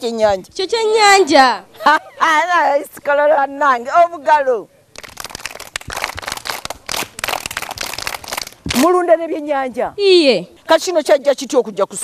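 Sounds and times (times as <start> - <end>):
children clapping: 5.0 - 8.6.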